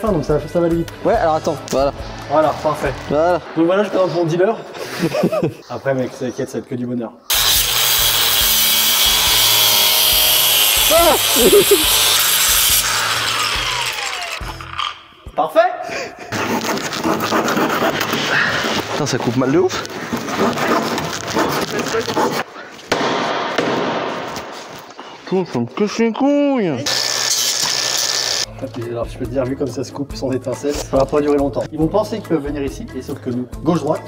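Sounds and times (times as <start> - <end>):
angle grinder cutting sheet metal: 7.3 - 15.1, 26.8 - 28.5.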